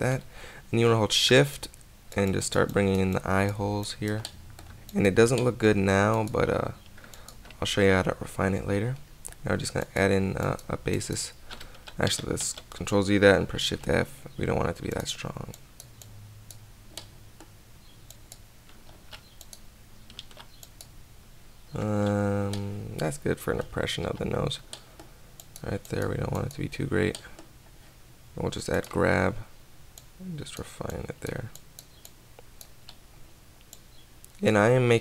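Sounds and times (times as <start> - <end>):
low background hiss: 0.0 - 35.0
steady low hum: 0.0 - 35.0
mouse clicks: 14.9 - 20.9
computer keyboard clicks: 18.1 - 20.9.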